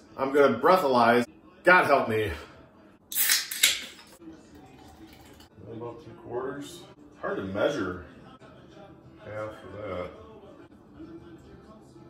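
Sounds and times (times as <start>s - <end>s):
can ring-pull popping: 3.1s - 4.2s.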